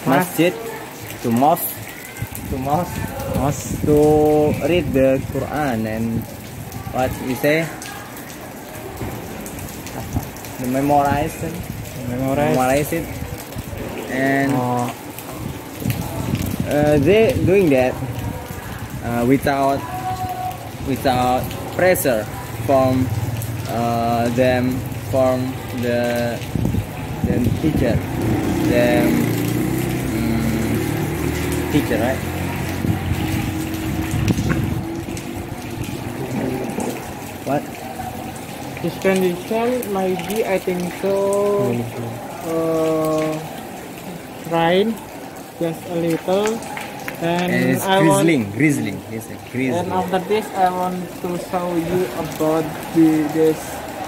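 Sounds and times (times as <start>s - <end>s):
light drizzle falling: 0.0s - 54.0s
light rain pattering: 0.0s - 54.0s
background voices: 27.1s - 44.2s, 46.5s - 54.0s.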